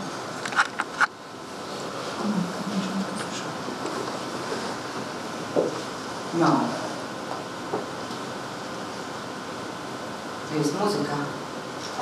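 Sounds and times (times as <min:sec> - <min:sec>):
low hush of room noise: 0:00.0 - 0:12.0.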